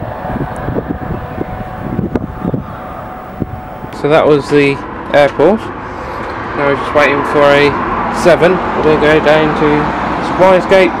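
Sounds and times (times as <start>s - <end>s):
faint steady hum: 0.0s - 6.1s
wind buffeting microphone: 0.0s - 10.9s.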